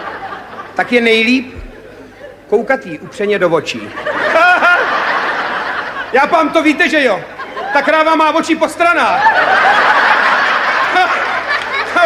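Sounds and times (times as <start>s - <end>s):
audience laughing: 0.0s - 12.0s.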